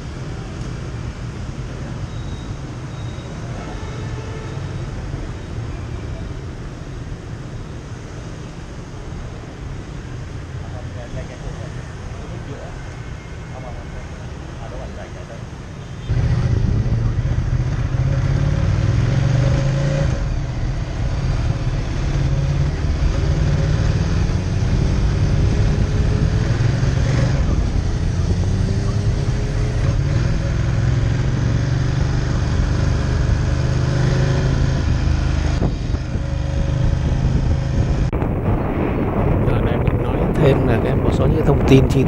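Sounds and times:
traffic: 0.0 - 42.0
motorcycle engine accelerating: 16.1 - 41.0.

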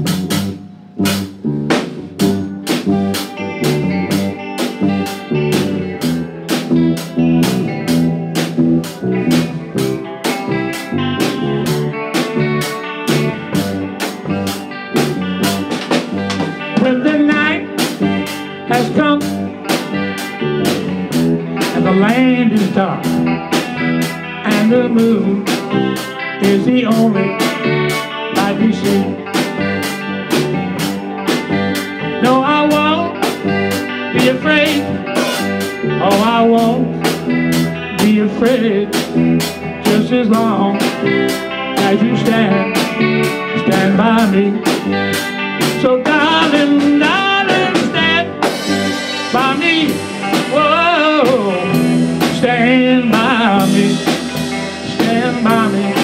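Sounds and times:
electric guitar bent notes: 0.0 - 56.0
live blues band playing: 0.0 - 56.0.

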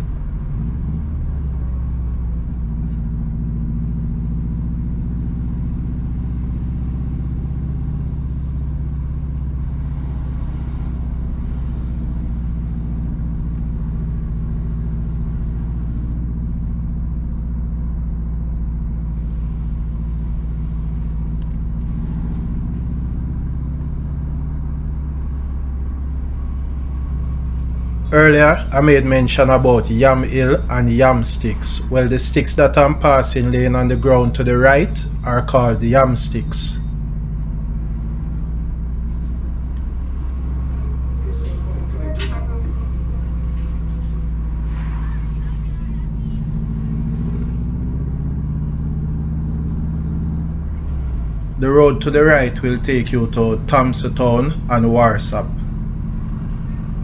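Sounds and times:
car engine hum: 0.0 - 57.0
tyre noise on road: 0.0 - 57.0.

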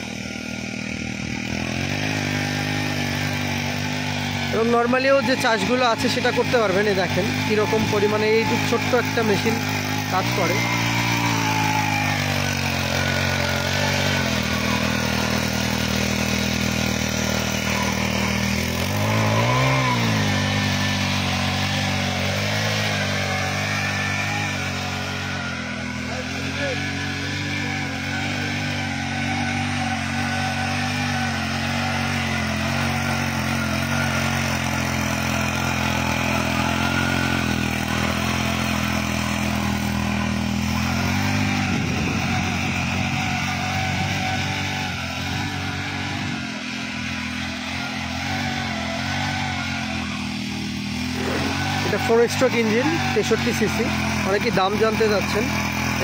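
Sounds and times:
small tiller engine running: 0.0 - 56.0
tines churning soil: 0.0 - 56.0.

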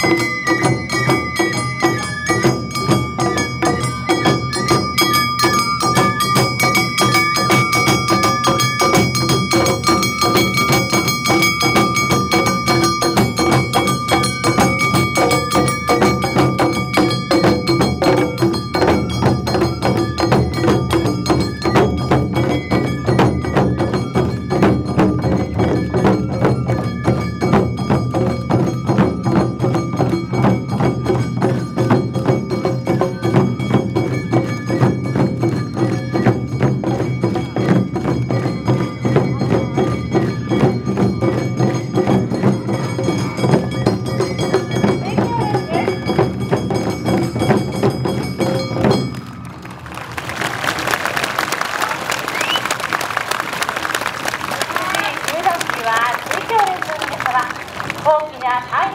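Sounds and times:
bamboo flute long notes: 0.0 - 9.0
metallic bell-like strikes: 0.0 - 49.2
taiko drums beaten fast: 0.0 - 49.2.

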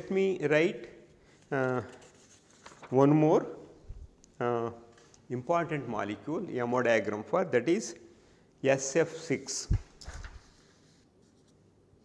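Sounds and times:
paper being handled: 1.2 - 4.2, 9.6 - 11.7.

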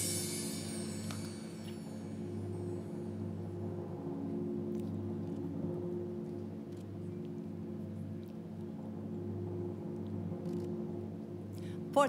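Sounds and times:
low suspense music drone: 0.0 - 12.0.

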